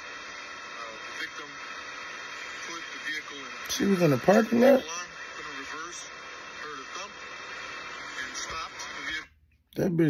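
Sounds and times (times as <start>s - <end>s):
man speaking on tv news: 2.6s - 7.2s, 8.1s - 10.0s.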